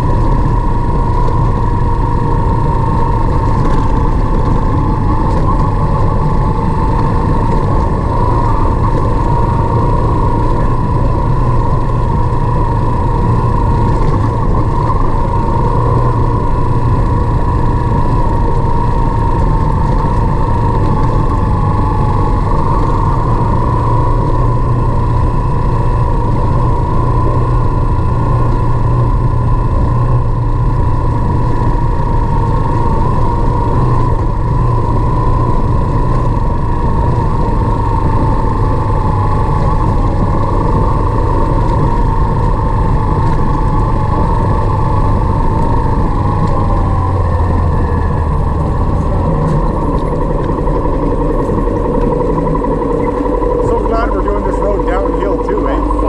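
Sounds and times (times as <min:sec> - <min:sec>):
motorcycle engine running: 0:00.0 - 0:56.0
road noise: 0:00.0 - 0:56.0.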